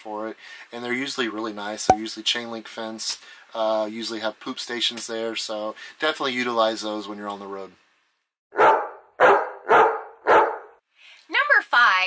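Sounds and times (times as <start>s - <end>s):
dog barking: 8.5s - 10.8s.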